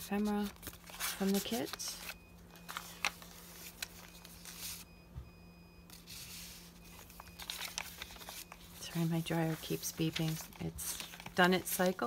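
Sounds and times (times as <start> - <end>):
paper pages rustling and flipping: 0.0 - 4.9, 5.9 - 12.0
faint electronic dryer beeps: 0.0 - 12.0
steady low hum: 0.0 - 12.0.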